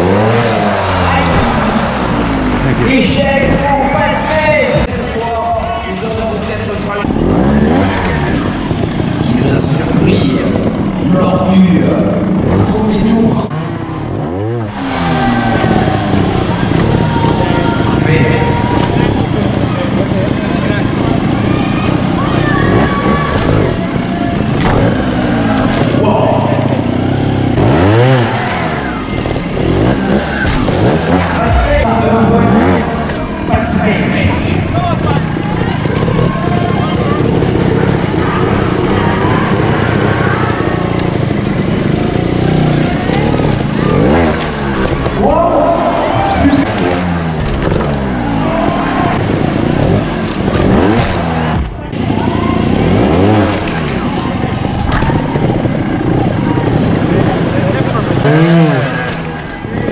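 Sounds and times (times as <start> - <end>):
amplified arena talk: 0.0 - 59.9
motorcycle engine revving: 0.0 - 59.9.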